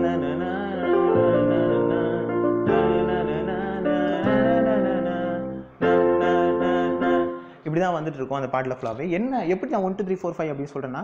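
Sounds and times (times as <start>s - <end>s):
keyboard piano chords: 0.0s - 7.8s.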